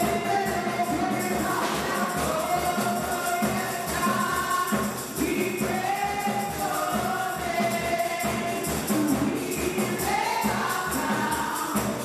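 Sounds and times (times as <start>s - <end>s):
amplified music with steady beat: 0.0s - 12.0s
women singing gospel: 0.0s - 12.0s.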